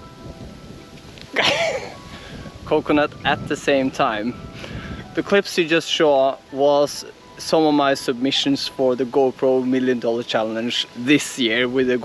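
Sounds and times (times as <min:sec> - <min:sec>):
faint background music: 0:00.0 - 0:12.0
man laughing: 0:01.4 - 0:02.0.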